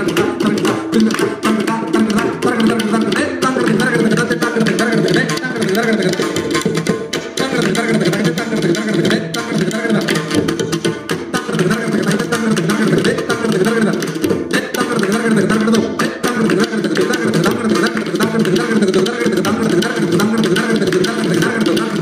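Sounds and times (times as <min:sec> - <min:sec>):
hand drums playing fast rhythm: 0:00.0 - 0:22.0.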